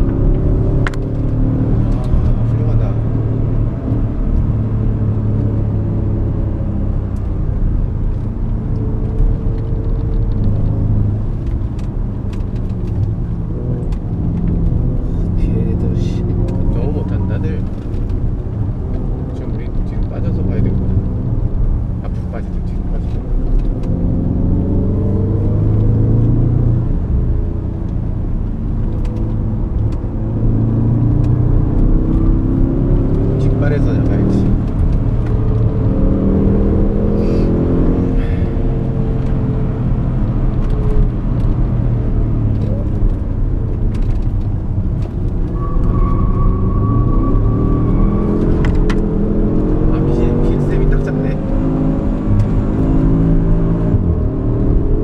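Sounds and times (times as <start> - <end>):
car engine revving: 0.0 - 55.0.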